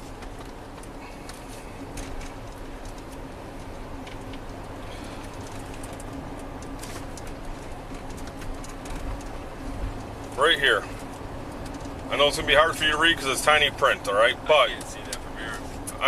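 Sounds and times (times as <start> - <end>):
car engine or fan humming: 0.0 - 16.0.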